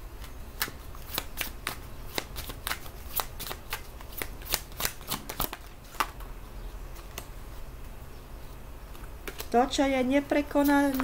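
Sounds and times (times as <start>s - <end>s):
cards being shuffled: 0.2s - 6.2s, 8.9s - 9.6s, 10.6s - 11.0s.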